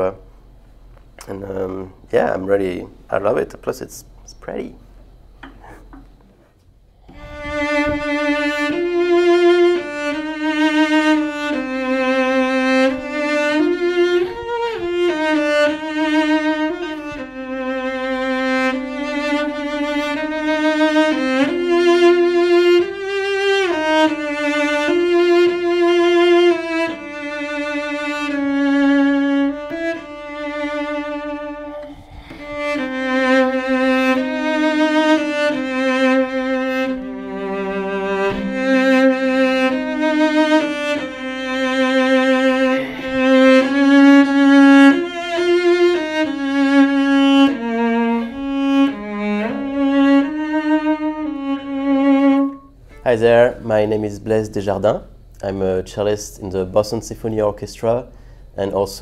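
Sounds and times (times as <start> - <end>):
bowed cello melody: 5.2 - 55.0.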